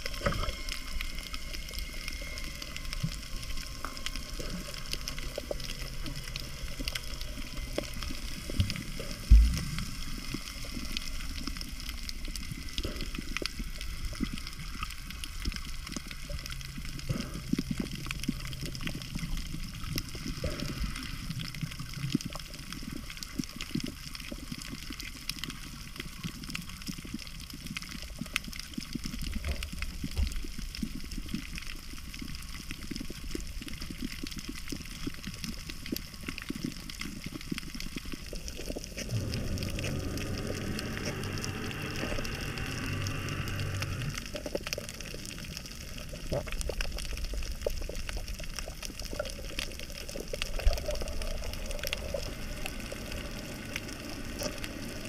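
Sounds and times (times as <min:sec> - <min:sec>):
small underwater clicks and crackles: 0:00.0 - 0:55.0
underwater rush of water: 0:00.0 - 0:55.0.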